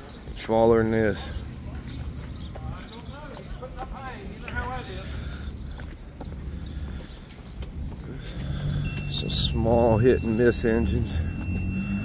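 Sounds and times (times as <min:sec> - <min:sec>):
distant voices talking: 0:00.0 - 0:12.0.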